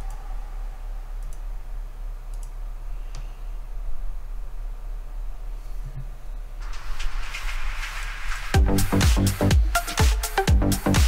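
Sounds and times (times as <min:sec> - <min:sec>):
steady low hum: 0:00.0 - 0:11.0
computer mouse clicks: 0:01.2 - 0:01.5, 0:02.3 - 0:03.3.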